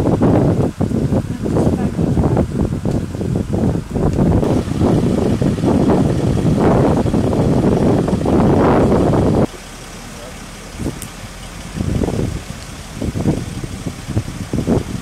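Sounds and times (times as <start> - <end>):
loud low rumbling: 0.0 - 15.0.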